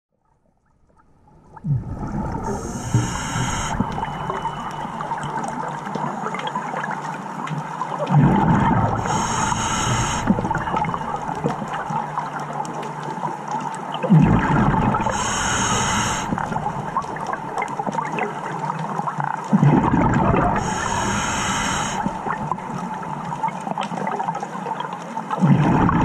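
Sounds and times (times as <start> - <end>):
fine crackling underwater: 0.1 - 26.0
exhaled bubbles burbling: 0.8 - 26.0
diver breathing through regulator: 2.2 - 5.6, 8.4 - 11.7, 14.4 - 17.4, 20.2 - 23.0.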